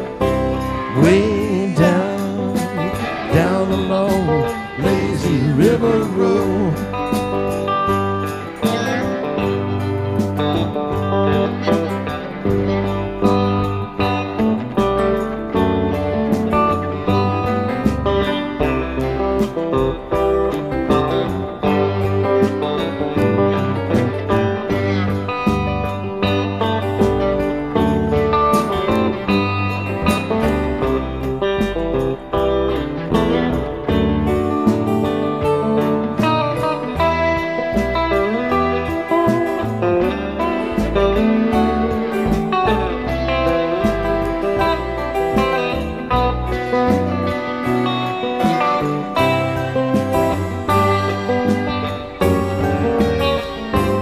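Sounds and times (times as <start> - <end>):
bass guitar: 0.0 - 54.0
drums: 0.0 - 54.0
lead electric guitar solo: 0.0 - 54.0.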